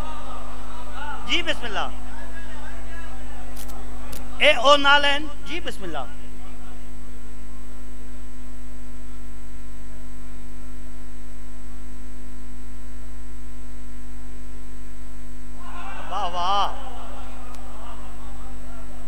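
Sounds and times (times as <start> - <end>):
man's voice: 0.0 - 6.9, 15.6 - 19.0
electrical mains hum: 0.0 - 19.0.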